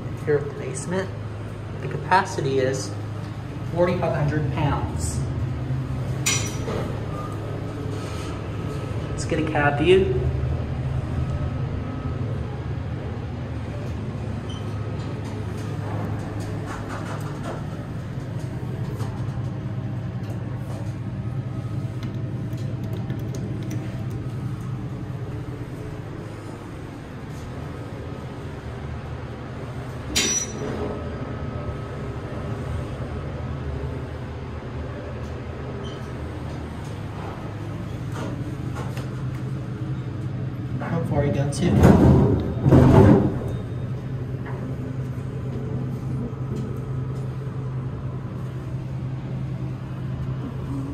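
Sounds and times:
elevator hum and rumble: 0:00.0 - 0:50.9.

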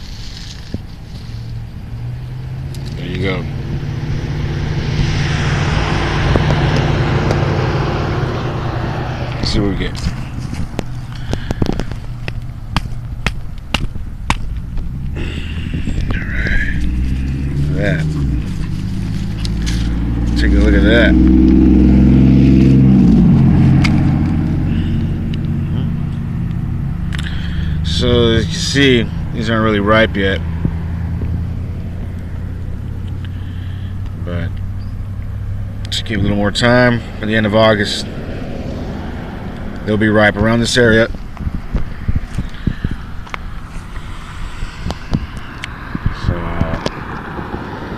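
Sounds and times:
low rumble: 0:00.0 - 0:37.2, 0:38.0 - 0:47.9
low mechanical drone: 0:00.0 - 0:47.9.

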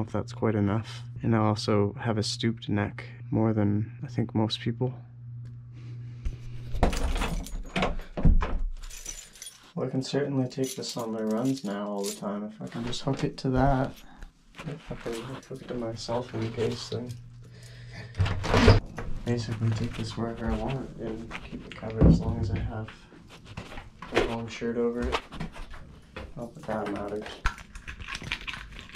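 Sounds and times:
steady low hum: 0:00.0 - 0:08.1, 0:08.9 - 0:27.4
door scraping open: 0:18.2 - 0:18.8.

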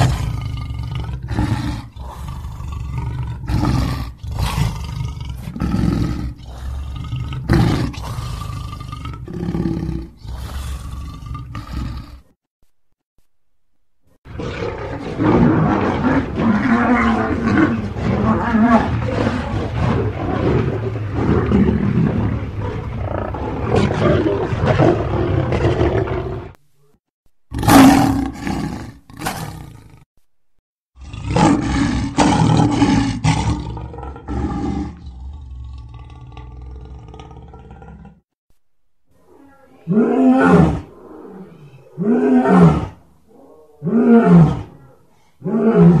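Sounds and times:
lions roaring: 0:00.0 - 0:12.2, 0:14.3 - 0:26.6, 0:27.5 - 0:30.0, 0:31.0 - 0:38.2, 0:39.3 - 0:46.0.

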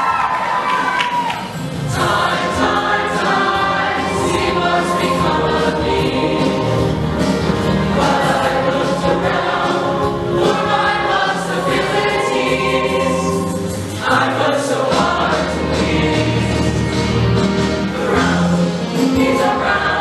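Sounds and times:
mixed choir singing: 0:01.8 - 0:20.0.

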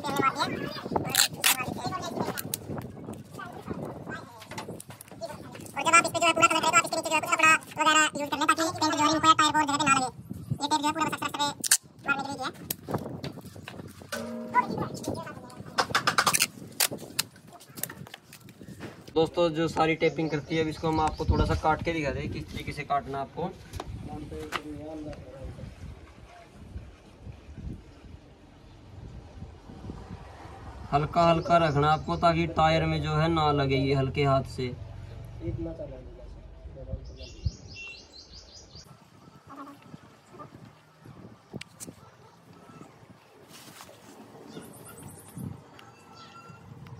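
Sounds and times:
bird chirping: 0:36.4 - 0:43.1, 0:44.4 - 0:46.9.

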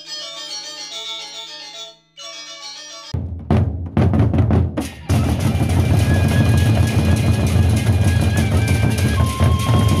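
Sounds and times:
barrel drums beaten fast: 0:03.2 - 0:10.0.

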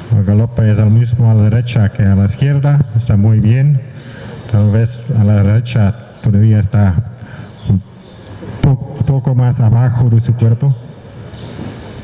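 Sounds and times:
man speaking: 0:00.0 - 0:11.0
steady background hiss: 0:00.0 - 0:12.0.

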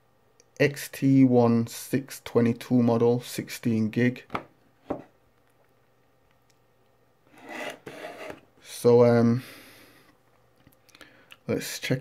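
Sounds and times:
cardboard box scraping on desk: 0:07.3 - 0:08.4.

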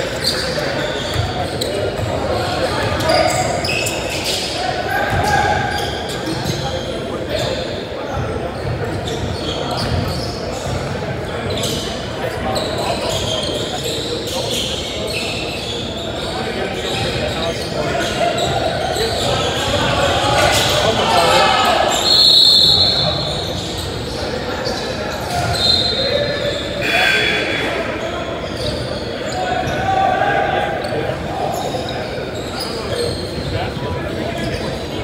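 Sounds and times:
players shouting: 0:18.0 - 0:23.7, 0:25.2 - 0:31.5
referee whistle blast: 0:22.0 - 0:23.3.

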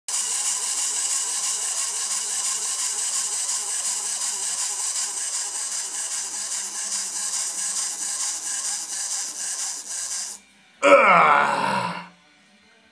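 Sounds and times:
fine rapid rattle: 0:00.1 - 0:10.4
mechanical whirring with hiss: 0:00.1 - 0:10.4.

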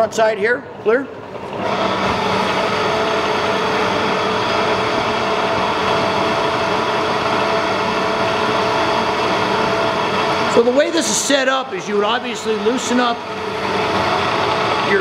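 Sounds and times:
machine drone: 0:01.5 - 0:15.0.

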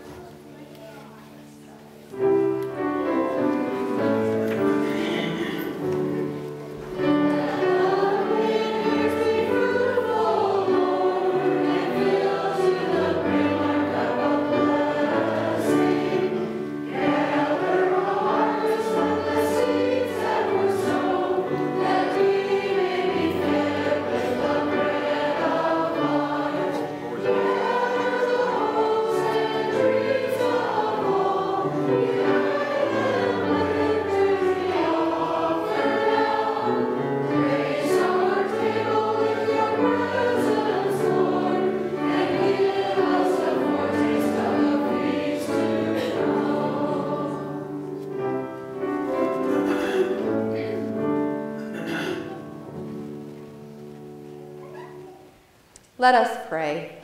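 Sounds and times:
congregation singing a hymn: 0:00.0 - 0:55.3.

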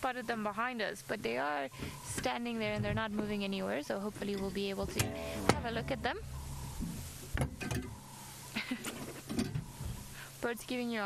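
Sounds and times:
low rumble: 0:04.8 - 0:08.3.

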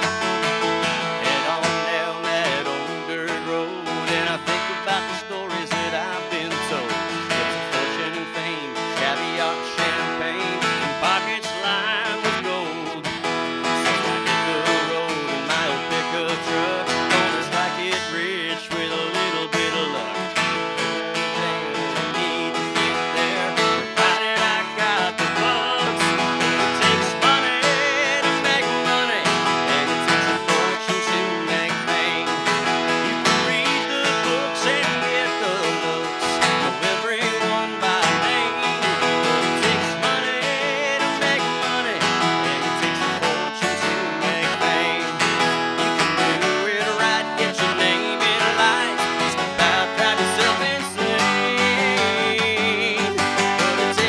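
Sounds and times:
man singing: 0:00.0 - 0:54.0
strummed acoustic guitar: 0:00.0 - 0:54.0.

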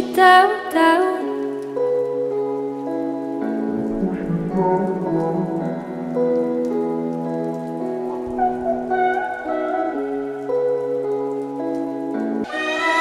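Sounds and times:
held synth chords: 0:03.7 - 0:11.1.

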